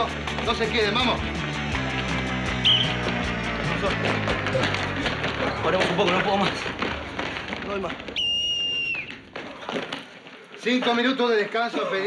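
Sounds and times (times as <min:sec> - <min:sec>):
sports whistle blast: 0:02.6 - 0:03.0, 0:08.2 - 0:09.2.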